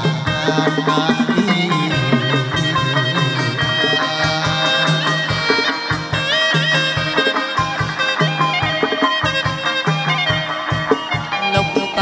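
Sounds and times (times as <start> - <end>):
plucked strings: 0.0 - 12.0
regular drum beats: 0.0 - 12.0.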